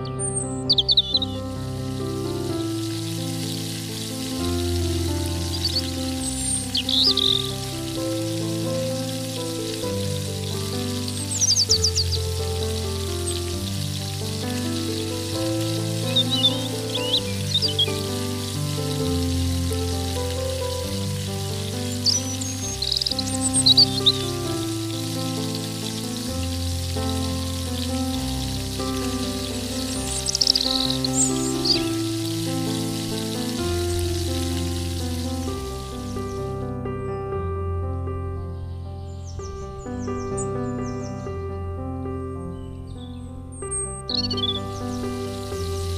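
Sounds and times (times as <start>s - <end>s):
birds chirping: 0.0s - 37.6s, 38.2s - 45.9s
soft instrumental music: 0.0s - 45.9s
food deep-frying in oil: 0.6s - 36.5s, 44.1s - 45.9s.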